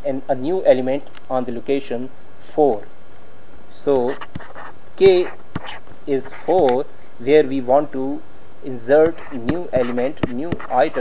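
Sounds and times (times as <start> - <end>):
steady background noise: 0.0 - 11.0
faint clicks: 1.0 - 1.3
man speaking: 3.8 - 4.3, 5.0 - 5.4, 6.1 - 11.0.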